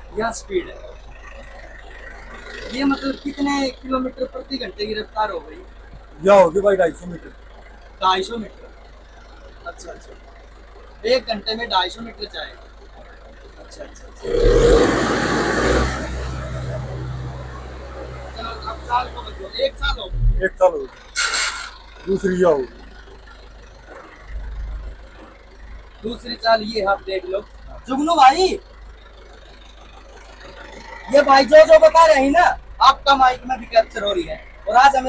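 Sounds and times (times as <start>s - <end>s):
tractor diesel engine droning: 0.0s - 35.0s.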